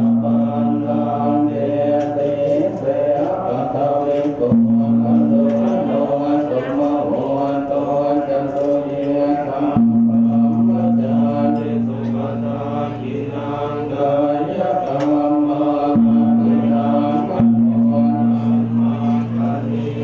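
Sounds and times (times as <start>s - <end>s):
monks chanting in unison: 0.0s - 20.0s.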